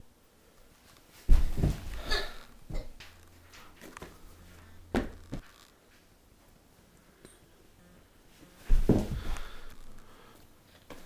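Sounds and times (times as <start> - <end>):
faint low hum: 0.0 - 11.0
dull thumps: 1.3 - 3.1, 4.9 - 5.5, 8.6 - 9.7.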